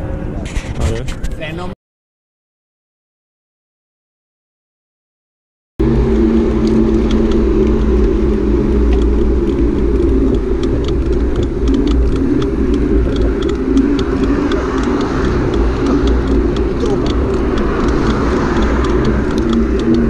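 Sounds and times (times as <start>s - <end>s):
faint irregular ticks: 5.9s - 20.0s.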